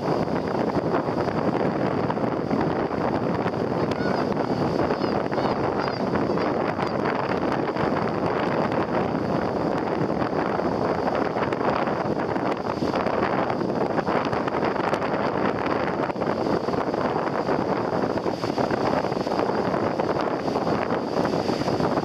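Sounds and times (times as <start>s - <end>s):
breaking surf: 0.0s - 22.0s
wind buffeting microphone: 0.0s - 22.0s.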